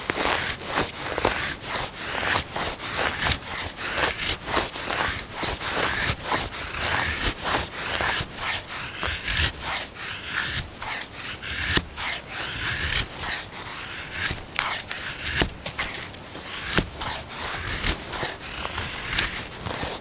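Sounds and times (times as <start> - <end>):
knife scraping wood: 0.0 - 20.0.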